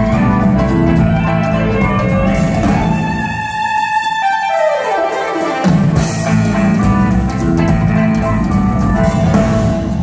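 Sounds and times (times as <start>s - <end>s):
bass: 0.0s - 3.8s, 5.7s - 10.0s
drums: 0.0s - 10.0s
electric guitars: 0.0s - 10.0s
keyboards: 0.0s - 10.0s.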